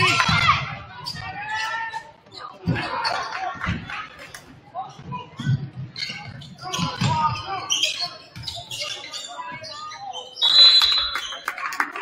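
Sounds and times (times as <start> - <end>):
voices in gym: 0.0 - 12.0
referee's whistle blast: 10.4 - 11.3.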